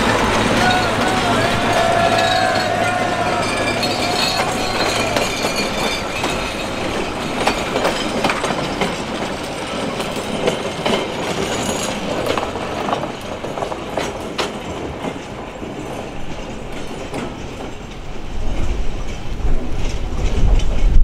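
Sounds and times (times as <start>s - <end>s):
train wheels clicking over rail joints: 0.0s - 21.0s.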